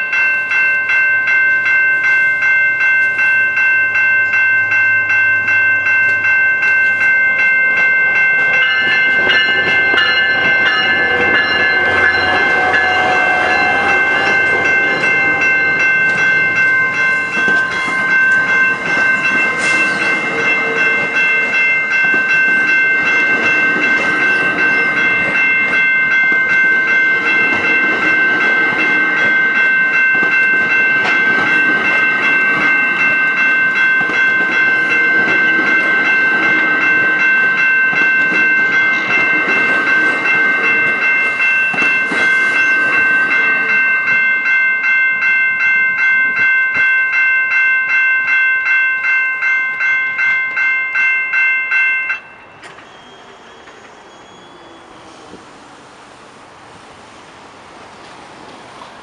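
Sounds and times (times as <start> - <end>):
level crossing bell ringing: 0.0 - 52.7
train wheel clatter: 6.9 - 45.1.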